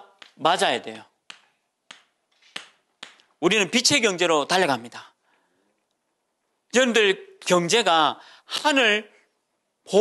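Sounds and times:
chalk clicking on chalkboard: 1.2s - 3.2s.

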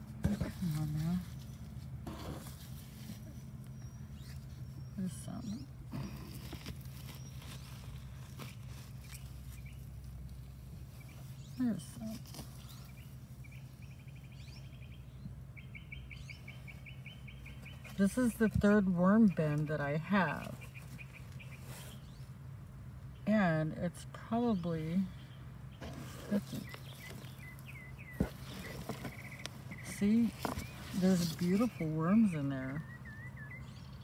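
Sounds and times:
bird chirping: 3.1s - 9.9s, 10.9s - 18.4s, 19.1s - 22.4s, 24.5s - 34.0s
hand digging through moist compost: 5.4s - 13.4s, 25.8s - 32.8s
bird trilling: 26.5s - 34.0s.

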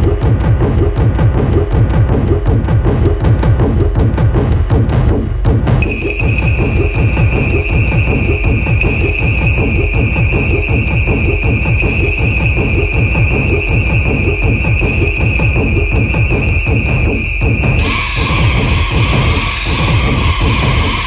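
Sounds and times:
bass-heavy electronic beat: 0.0s - 21.0s
steady high-pitched tone: 5.8s - 19.3s.

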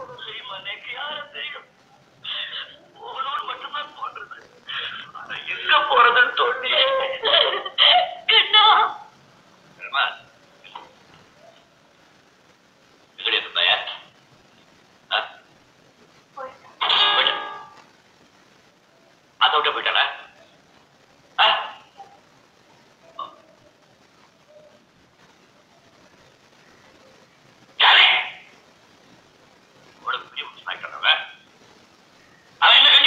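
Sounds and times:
person speaking: 0.0s - 9.0s, 16.7s - 17.8s, 27.8s - 28.5s, 32.6s - 33.0s.

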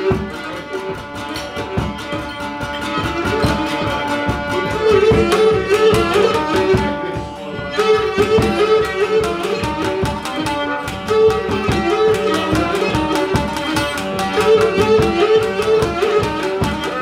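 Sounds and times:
bowed lyra melody: 0.0s - 17.0s
lute strumming: 0.0s - 17.0s
steady hand drum beat: 0.0s - 17.0s.

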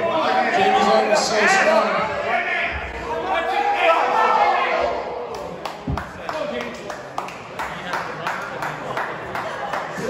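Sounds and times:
audience clapping: 5.2s - 10.0s.

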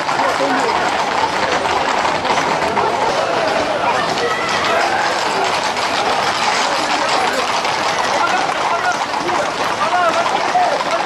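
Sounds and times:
horse hooves clattering on pavement: 0.0s - 11.0s
crowd shouting: 2.7s - 11.0s.

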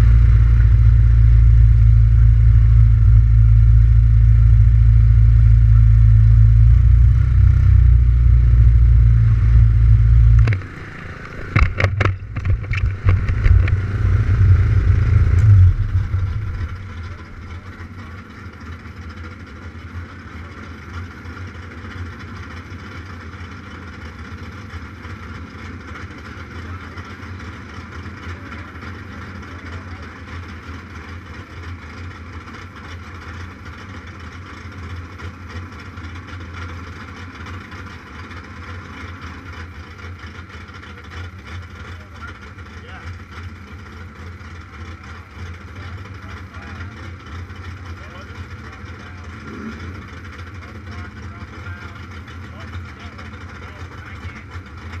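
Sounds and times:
motorcycle engine idling: 0.0s - 55.0s.

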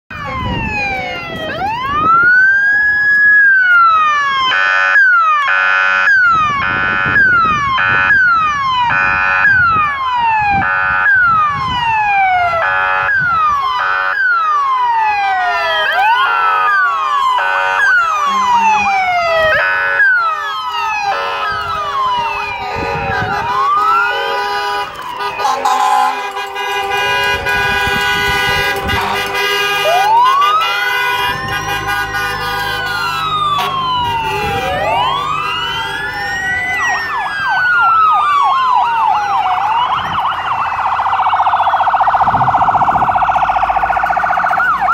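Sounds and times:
horn-like siren blasts: 0.1s - 44.9s
police sirens wailing: 0.1s - 44.9s.

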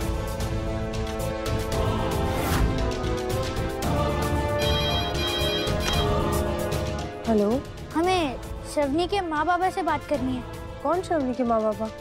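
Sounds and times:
background music: 0.0s - 12.0s
telephone ringing: 4.6s - 6.2s.

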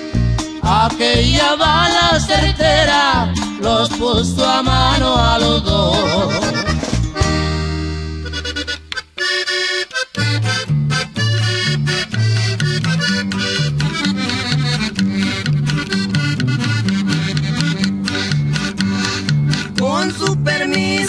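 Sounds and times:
bass line: 0.0s - 21.0s
norteno band music with accordion: 0.0s - 21.0s.

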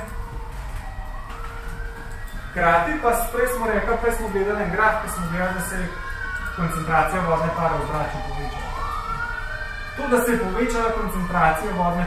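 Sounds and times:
faint emergency siren wailing: 0.0s - 12.0s.

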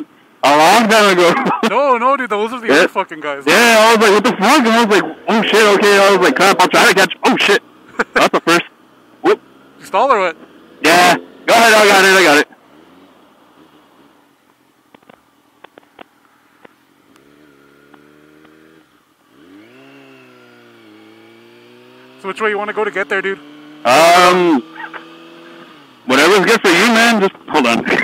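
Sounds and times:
motorcycle engine accelerating: 3.5s - 14.3s, 17.1s - 28.0s.

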